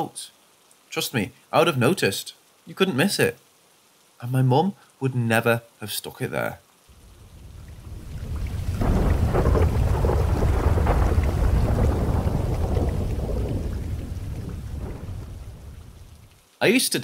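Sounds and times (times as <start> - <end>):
rain: 0.0 - 17.0
thunder rolling: 7.0 - 16.3.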